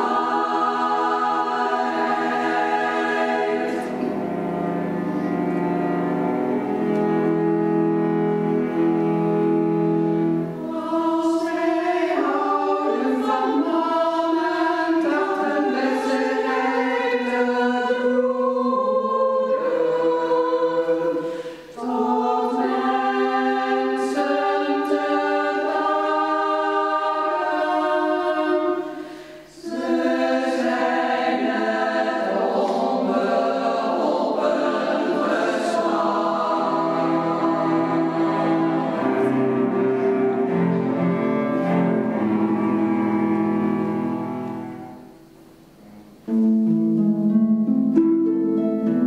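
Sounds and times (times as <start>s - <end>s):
women's choir singing: 0.0s - 5.0s, 10.5s - 45.2s.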